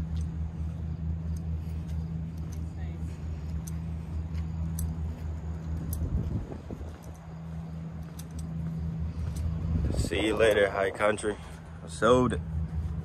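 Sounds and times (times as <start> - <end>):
vehicle engine idling: 0.0 - 13.0.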